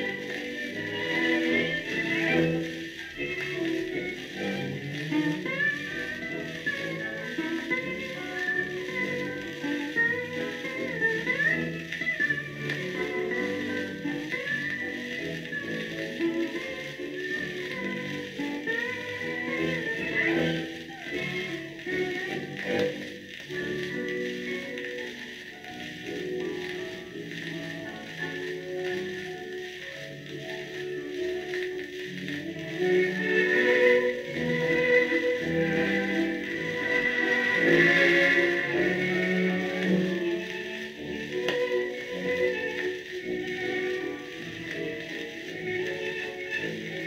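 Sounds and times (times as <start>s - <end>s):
orchestral waltz on old record: 0.0s - 47.0s.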